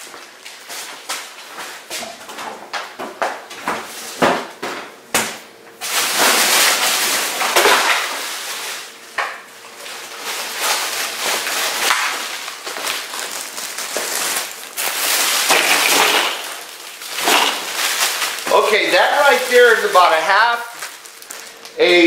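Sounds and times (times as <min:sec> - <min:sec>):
ice cubes clattering in plastic chest: 0:05.9 - 0:08.6, 0:09.9 - 0:21.4.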